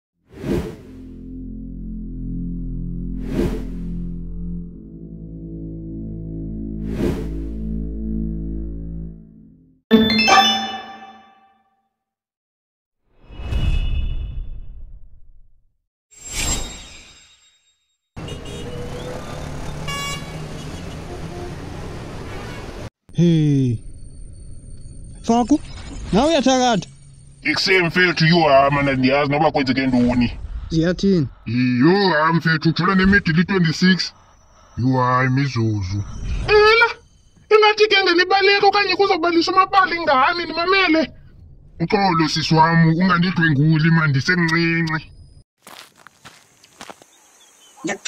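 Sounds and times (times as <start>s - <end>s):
short car horn toot: 18.2s - 18.8s, 19.8s - 20.4s
city street traffic: 18.2s - 22.9s.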